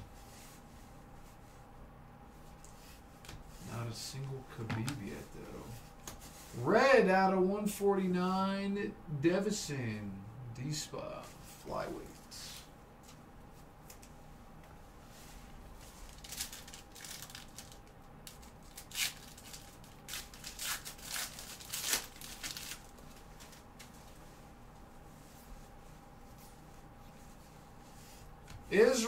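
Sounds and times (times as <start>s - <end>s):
faint steady hum: 0.0s - 29.0s
foil wrappers crinkling: 15.9s - 24.0s
card packs being torn open: 16.1s - 23.6s.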